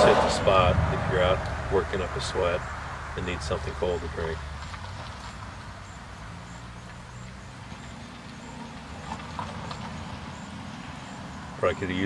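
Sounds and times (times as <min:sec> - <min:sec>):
low rumble: 0:00.0 - 0:03.8.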